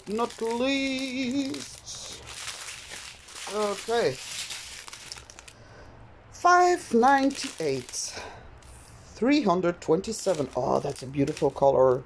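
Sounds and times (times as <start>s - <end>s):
plastic bags crinkling: 0.0s - 5.6s, 6.7s - 8.8s, 10.0s - 12.0s.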